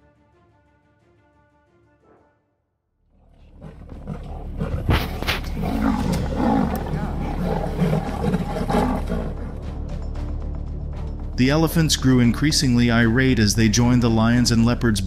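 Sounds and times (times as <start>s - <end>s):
big cats growling while fighting: 3.2s - 9.6s.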